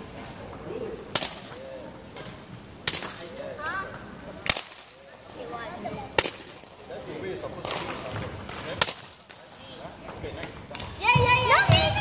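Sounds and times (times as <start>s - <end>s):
badminton racket striking shuttle: 1.1s - 1.6s.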